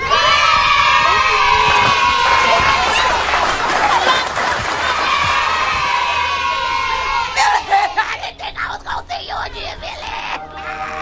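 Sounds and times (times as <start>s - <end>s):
women shrieking in excitement: 0.0s - 8.0s.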